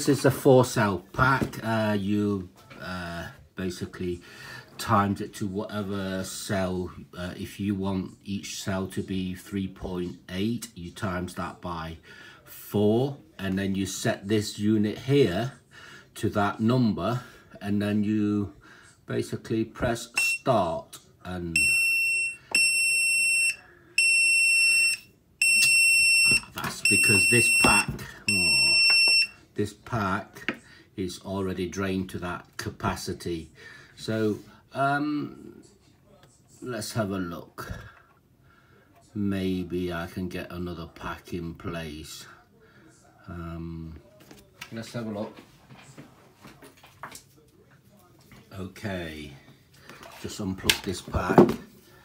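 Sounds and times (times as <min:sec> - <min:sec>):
high-pitched buzzer beeps: 0:21.6 - 0:29.4.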